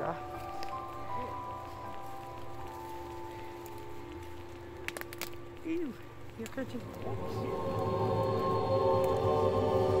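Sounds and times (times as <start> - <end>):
background music of held tones: 0.0 - 10.0
footsteps in dry leaves: 0.0 - 10.0.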